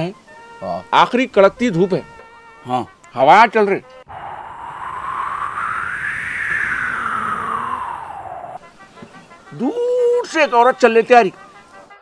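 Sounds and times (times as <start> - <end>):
whooshing wind gust: 4.1 - 8.7.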